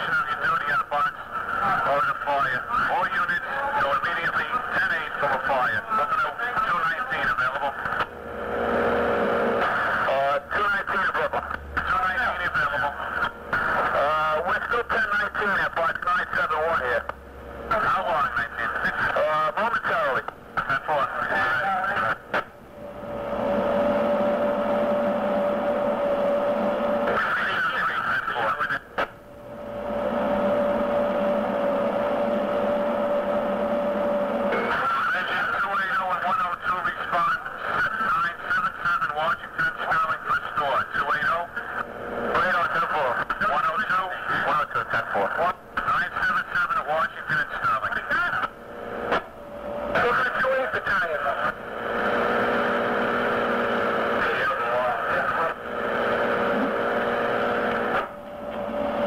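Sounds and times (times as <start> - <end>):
steady radio tone: 0.0 - 8.1, 9.5 - 59.0
two-way radio voices: 0.0 - 8.1, 9.6 - 22.5, 27.0 - 29.2, 34.5 - 52.2, 54.0 - 57.0.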